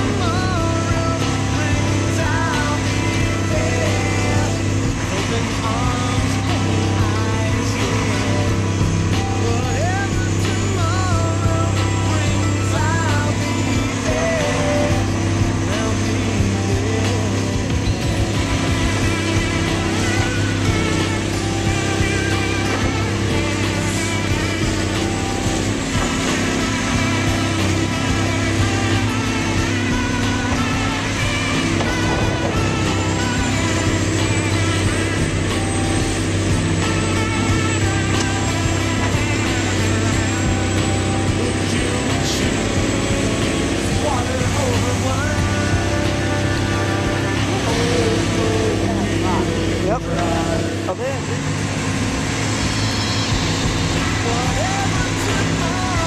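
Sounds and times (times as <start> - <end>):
excavator diesel engine running: 0.0 - 56.0.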